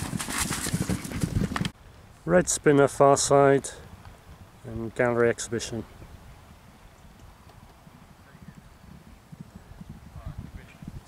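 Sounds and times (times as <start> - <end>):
galloping hoofbeats on turf: 0.0 - 1.7.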